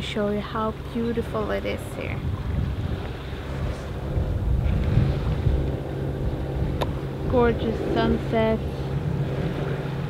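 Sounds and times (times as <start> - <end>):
boat engine humming: 0.0 - 10.0
wind buffeting microphone: 0.0 - 10.0.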